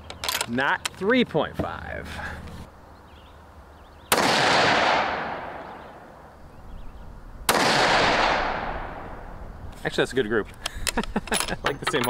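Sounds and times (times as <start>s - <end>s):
rifle shots echoing: 4.1s - 5.8s, 7.5s - 9.2s.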